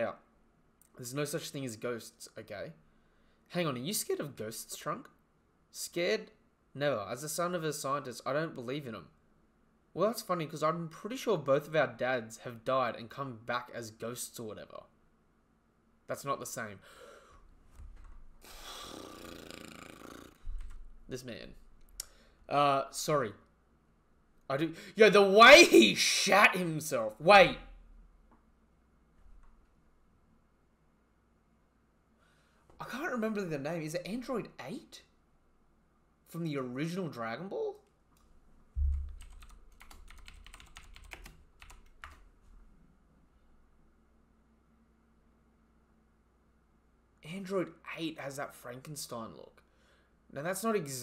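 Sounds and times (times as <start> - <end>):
low thump: 38.8 - 39.2
computer keyboard typing: 38.8 - 42.2.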